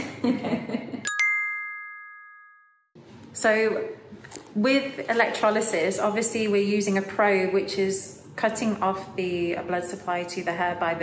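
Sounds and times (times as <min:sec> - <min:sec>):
bell-like ding: 0:01.1 - 0:02.9.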